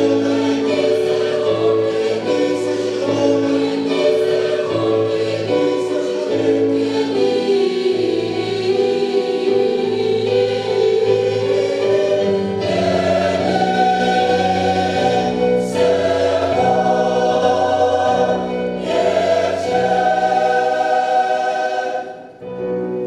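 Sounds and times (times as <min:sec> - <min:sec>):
church choir singing: 0:00.0 - 0:23.0.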